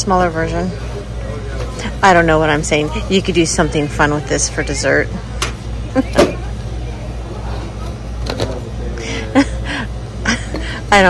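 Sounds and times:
woman's voice: 0.0 - 0.8, 1.8 - 5.2, 10.6 - 11.0
low background hum: 0.0 - 11.0.

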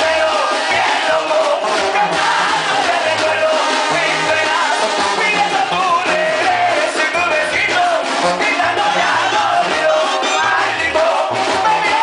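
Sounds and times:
bass line: 0.0 - 12.0
live brass band music: 0.0 - 12.0
man singing into microphone: 0.0 - 12.0
wind instruments holding notes: 0.0 - 12.0.

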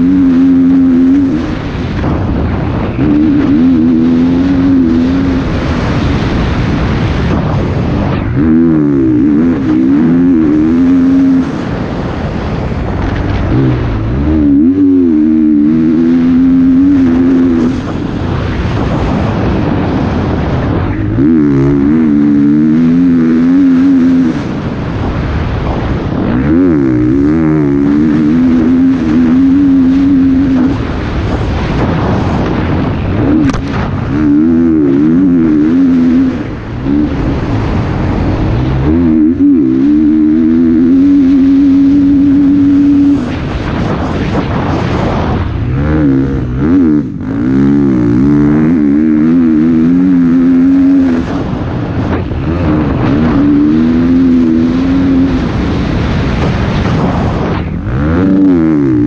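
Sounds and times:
motocross bike engine revving: 0.0 - 59.0.

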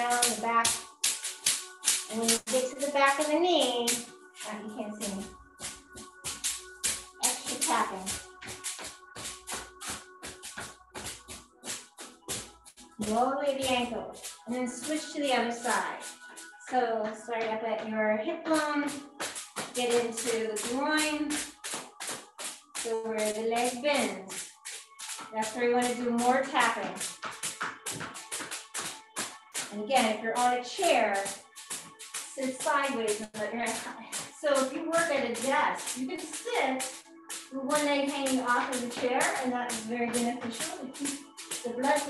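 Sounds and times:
hand slapping leg through clothing: 0.0 - 16.7, 18.5 - 42.0.

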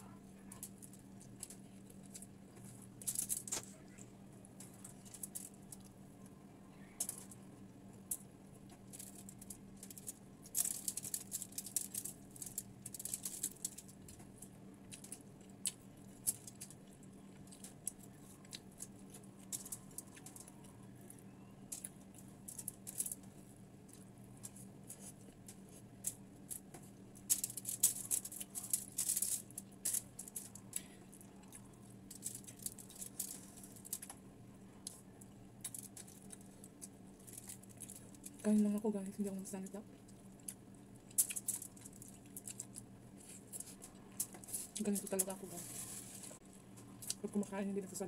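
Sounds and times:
faint low hum: 0.0 - 48.0
chewing crackles: 0.1 - 38.5, 39.8 - 45.2
fingers picking food off foil: 24.4 - 30.9.

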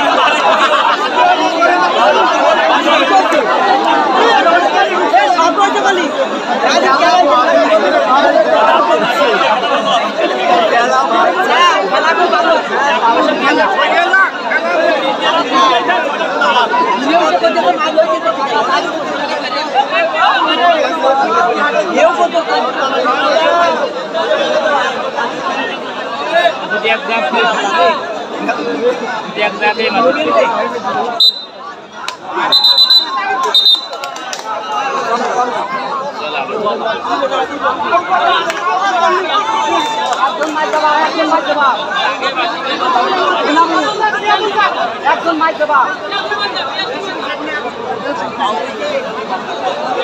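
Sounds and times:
crowd babble: 0.0 - 50.0.

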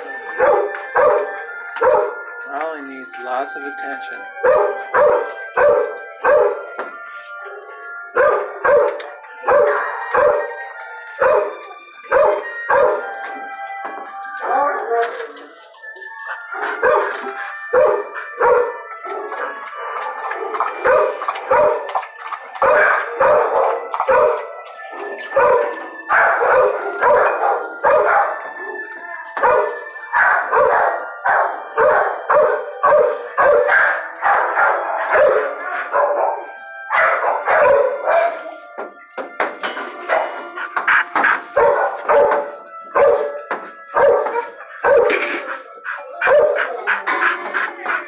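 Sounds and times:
dogs barking: 0.0 - 2.7, 4.4 - 48.0.

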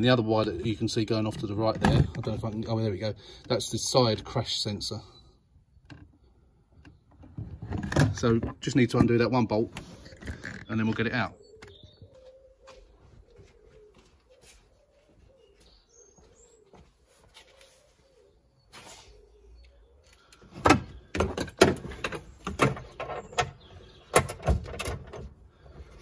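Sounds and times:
pigeon cooing: 9.9 - 20.4.

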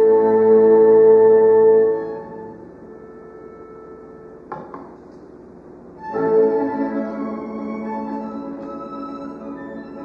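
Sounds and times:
orchestra chord: 0.0 - 4.5, 6.0 - 10.0
faint steady hum: 0.0 - 10.0.

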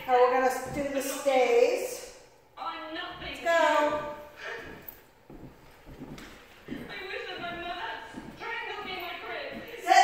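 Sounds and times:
soft footsteps on hardwood floor: 0.0 - 10.0.

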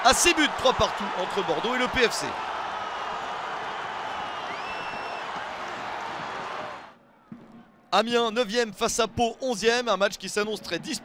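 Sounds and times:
stadium crowd cheering: 0.0 - 7.4.

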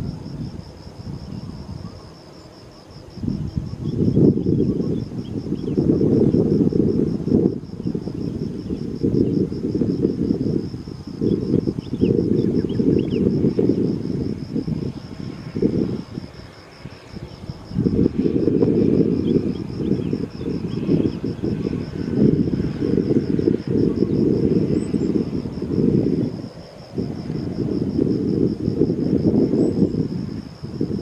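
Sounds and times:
insects trilling: 0.0 - 31.0
wind gusting on microphone: 0.0 - 31.0.

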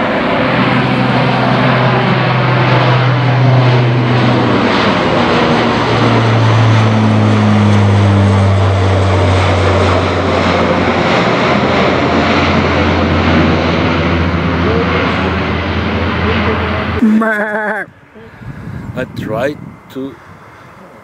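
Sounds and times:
propeller plane flying overhead: 0.0 - 21.0.

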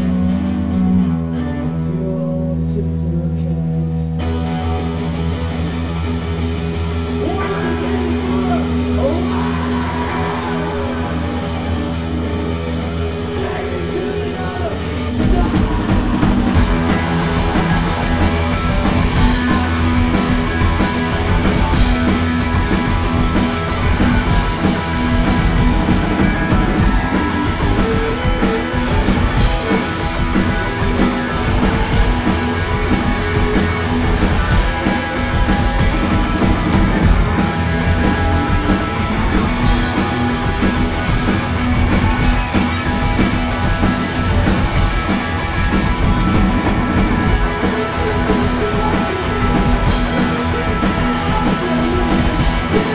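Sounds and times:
droning electric guitar: 0.0 - 52.9
rock band playing loud: 0.0 - 52.9
drums crashing: 15.1 - 52.9.

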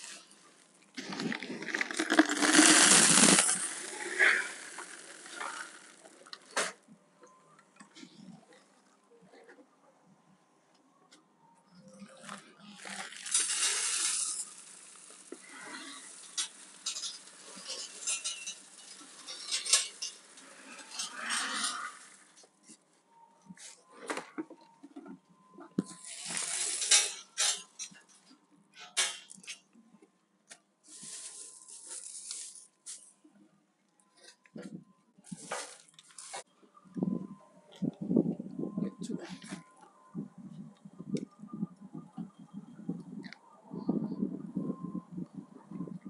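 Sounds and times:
gravel pouring from bucket: 0.0 - 0.3, 1.0 - 6.2, 12.2 - 22.3, 26.0 - 27.2, 30.9 - 32.6.

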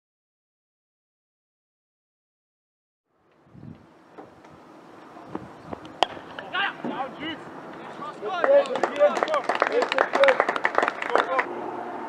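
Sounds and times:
players shouting: 5.1 - 12.0
cricket bat striking ball: 5.3 - 7.0.

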